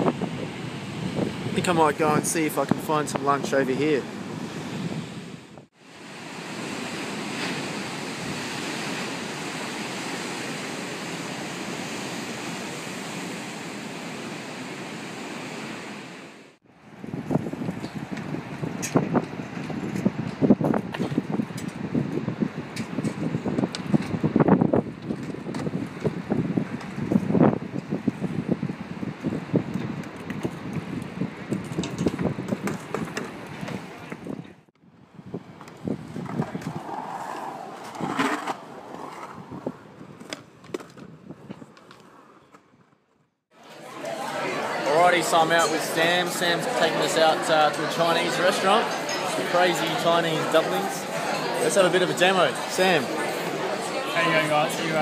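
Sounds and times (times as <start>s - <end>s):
wind: 0.0s - 55.0s
wheels rolling on concrete: 29.2s - 34.4s, 35.3s - 45.3s
bike and board impacts: 31.6s - 34.2s.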